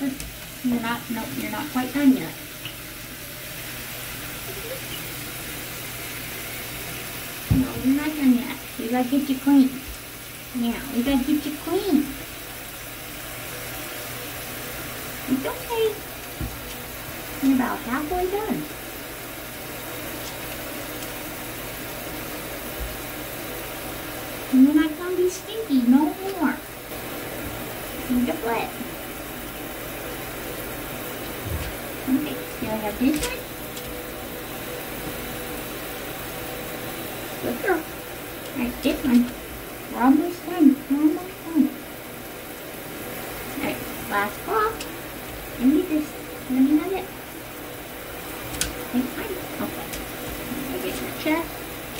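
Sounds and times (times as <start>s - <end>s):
woman speaking softly: 0.0s - 2.4s, 7.5s - 9.9s, 10.5s - 12.2s, 15.3s - 16.1s, 17.4s - 18.7s, 24.5s - 26.7s, 28.0s - 28.9s, 32.0s - 33.5s, 37.4s - 37.9s, 38.5s - 41.8s, 43.6s - 44.9s, 45.6s - 47.2s, 48.9s - 51.6s
water running into bathtub: 0.0s - 51.9s.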